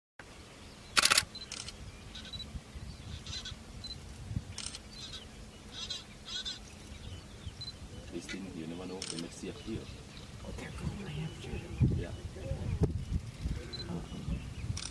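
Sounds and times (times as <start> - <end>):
camera shutter clicks: 0.9 - 1.8, 4.6 - 4.8, 9.0 - 9.3.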